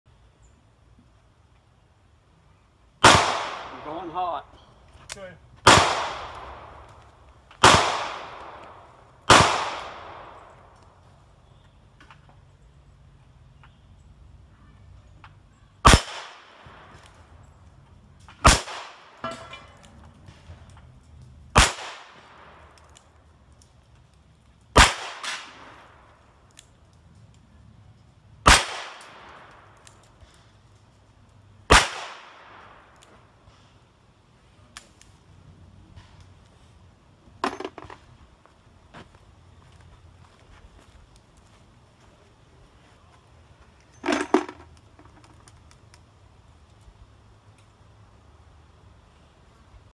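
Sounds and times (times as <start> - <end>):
faint sharp cracks: 3.0 - 12.4, 15.2 - 33.8, 34.7 - 35.2.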